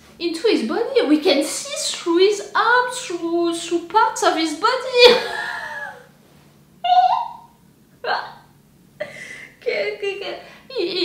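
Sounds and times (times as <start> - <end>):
woman's stifled laughter: 5.0 - 6.0.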